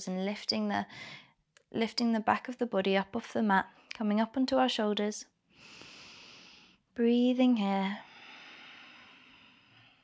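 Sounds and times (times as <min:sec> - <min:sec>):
person breathing softly: 0:00.9 - 0:01.4, 0:05.5 - 0:06.8, 0:08.0 - 0:10.0.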